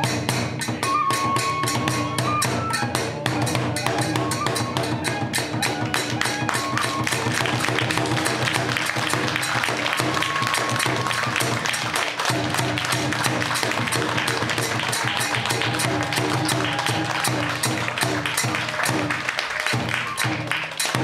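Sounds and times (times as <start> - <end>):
barrel drum beat: 0.0 - 21.0
transverse flute long notes: 0.8 - 13.0, 13.8 - 20.7
hand cymbals struck: 2.7 - 21.0.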